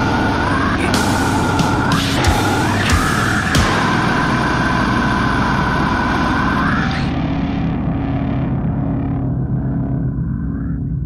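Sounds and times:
heavy metal music: 0.0 - 11.0.

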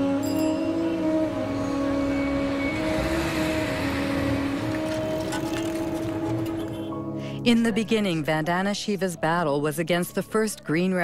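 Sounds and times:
city street traffic: 0.0 - 7.2
background music sustained notes: 0.0 - 11.0.

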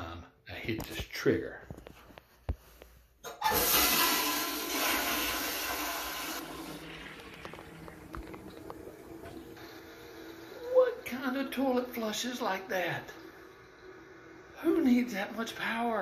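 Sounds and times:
toilet flush click: 3.2 - 10.2
toilet flushing: 3.2 - 16.0.

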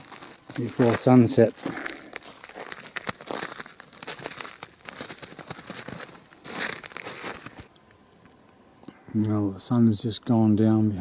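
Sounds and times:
footsteps crunching through snow: 0.0 - 7.7.

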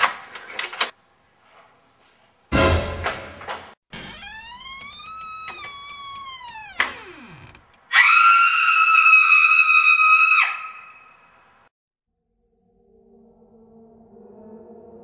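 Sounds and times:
sharp hit: 2.5 - 3.6.

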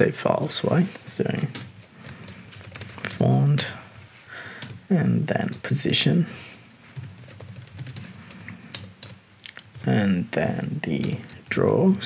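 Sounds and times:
computer keyboard typing: 1.4 - 4.8, 7.0 - 10.0, 11.0 - 11.9.

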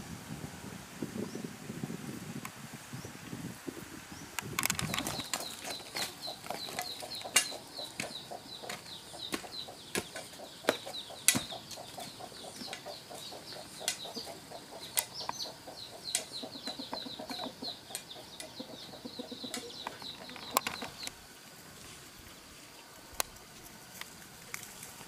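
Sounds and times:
rapid chirping calls: 4.1 - 21.2
sharp clicks and knocks: 4.4 - 12.9.

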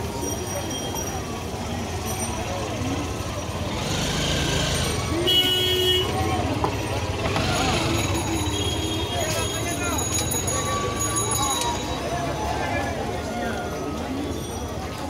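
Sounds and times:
many voices chattering: 0.0 - 15.0
traffic rumble: 0.0 - 15.0
vehicle horn toot: 5.2 - 6.2.

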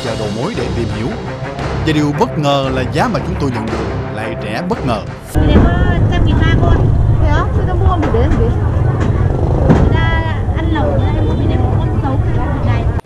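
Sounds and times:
two people talking: 0.0 - 13.0
low rumble of traffic: 5.4 - 13.0.

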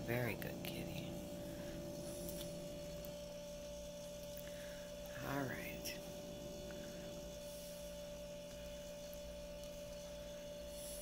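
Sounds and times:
electrical hum: 0.0 - 11.0
low drone: 0.0 - 11.0.

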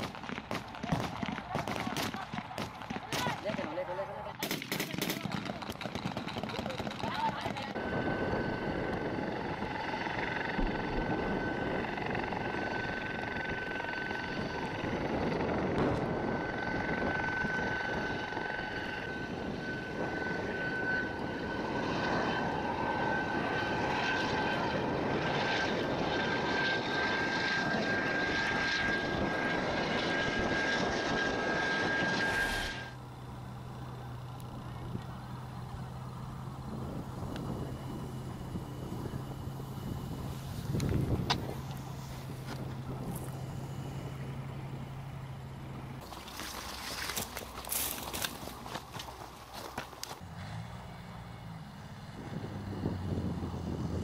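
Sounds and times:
helicopter rotor rumble: 0.0 - 54.0
helicopter turbine whine: 0.0 - 54.0.

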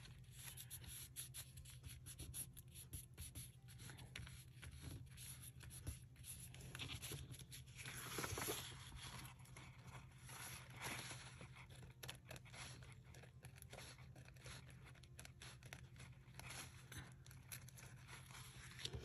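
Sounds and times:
paper rustling and scraping: 0.0 - 19.0.

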